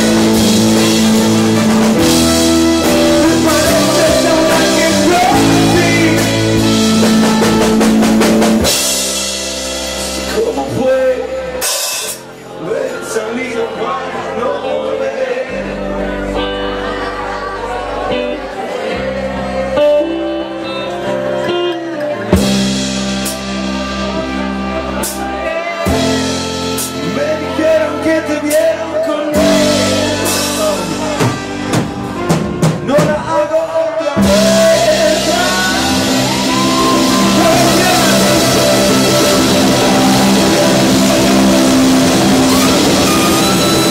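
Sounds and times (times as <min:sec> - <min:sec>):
lead vocal singing: 0:00.0 - 0:08.8, 0:10.2 - 0:21.3, 0:23.3 - 0:43.9
trumpet: 0:00.0 - 0:10.5, 0:34.2 - 0:43.9
drum kit: 0:00.0 - 0:12.3, 0:22.2 - 0:33.4, 0:34.2 - 0:43.9
electric guitars: 0:00.0 - 0:33.1, 0:34.2 - 0:43.9
keyboard: 0:00.0 - 0:43.9
live rock band: 0:00.0 - 0:43.9
rapid drum roll: 0:35.8 - 0:43.9.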